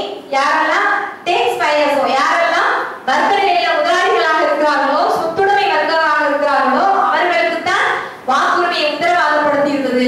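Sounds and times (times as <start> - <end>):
woman speaking into a microphone: 0.0 - 10.0.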